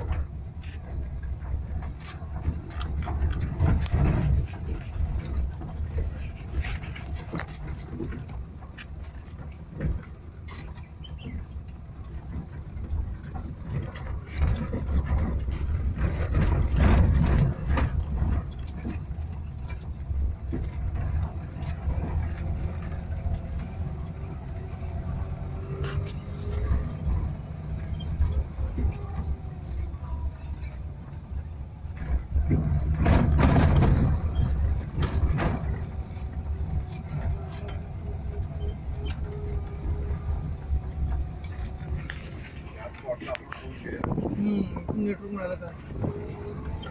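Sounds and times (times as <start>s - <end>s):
van body rattling and knocking: 0.0s - 46.9s
van engine running: 0.0s - 46.9s.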